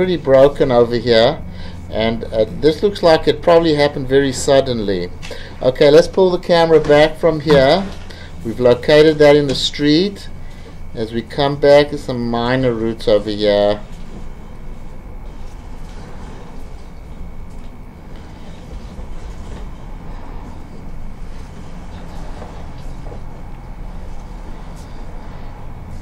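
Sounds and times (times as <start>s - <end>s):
faint high whine: 0.0s - 26.0s.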